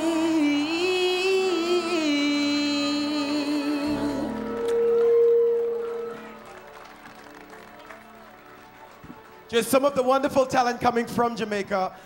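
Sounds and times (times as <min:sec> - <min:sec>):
two voices singing a duet: 0:00.0 - 0:05.5.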